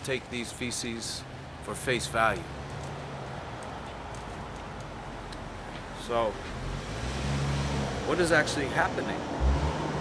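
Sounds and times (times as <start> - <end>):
man speaking: 0.0 - 2.5, 8.1 - 9.2.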